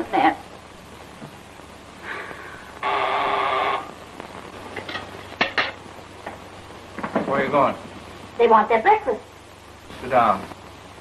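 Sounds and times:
electric call buzzer: 0:02.8 - 0:04.0.

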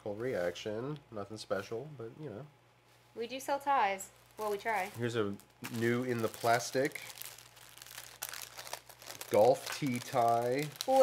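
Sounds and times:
plastic packaging crinkling: 0:04.1 - 0:11.0.

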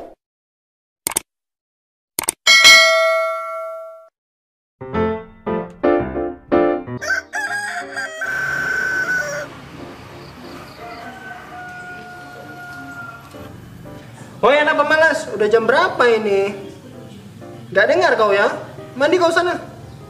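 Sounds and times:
bright bell ding: 0:02.5 - 0:04.1
rooster crowing: 0:07.0 - 0:09.6, 0:10.4 - 0:13.5.

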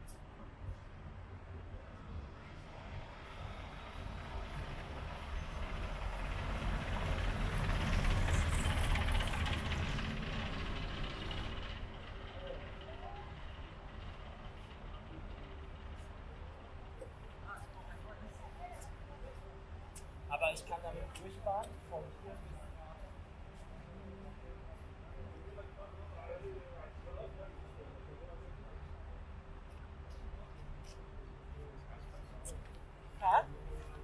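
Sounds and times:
train passing: 0:02.8 - 0:16.6.

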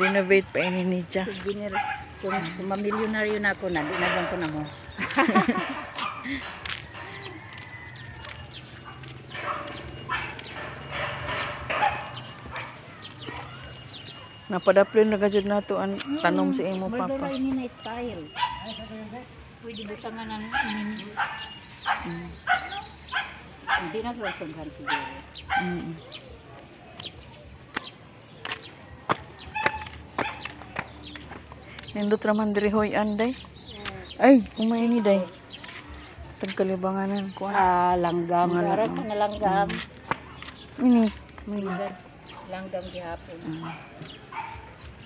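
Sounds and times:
dog barking: 0:01.7 - 0:04.7, 0:05.5 - 0:06.6, 0:08.8 - 0:14.4, 0:18.3 - 0:18.8, 0:20.5 - 0:25.9, 0:41.6 - 0:42.6, 0:43.5 - 0:44.8
flip-flops slapping on concrete: 0:27.0 - 0:31.9.

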